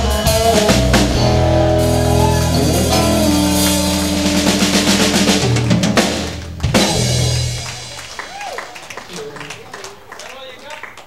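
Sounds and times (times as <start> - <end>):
live country band playing: 0.0 - 8.9.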